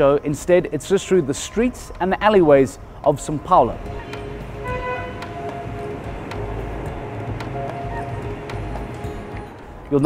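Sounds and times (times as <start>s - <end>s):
faint music: 0.0s - 10.0s
low traffic rumble: 0.0s - 10.0s
horn-like tone: 3.9s - 6.1s.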